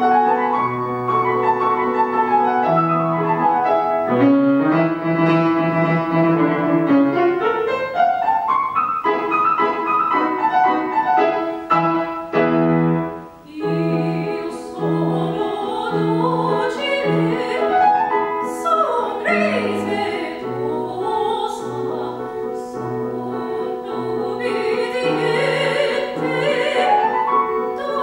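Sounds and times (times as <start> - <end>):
grand piano playing: 0.0 - 28.0.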